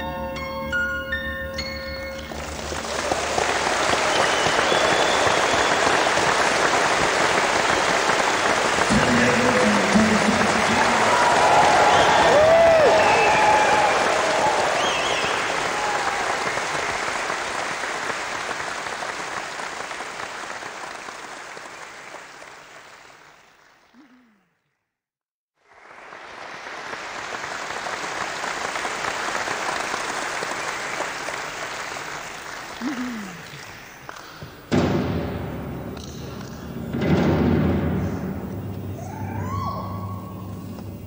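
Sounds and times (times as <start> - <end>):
audience applauding and cheering: 2.2 - 24.2, 25.6 - 34.8, 38.5 - 41.0.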